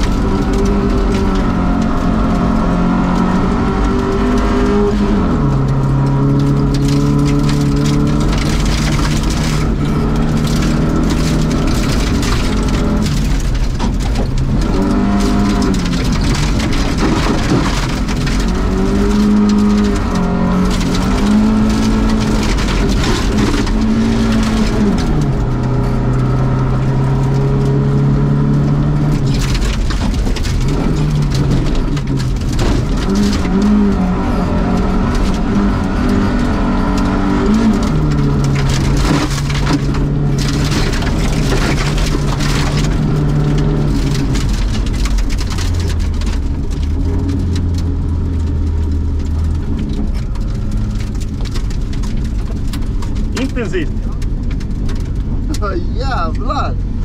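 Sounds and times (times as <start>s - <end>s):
rally car engine: 0.0s - 57.0s.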